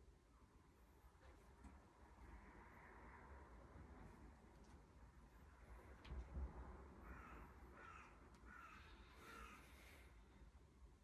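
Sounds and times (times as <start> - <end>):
faint bird calls: 7.0 - 10.3.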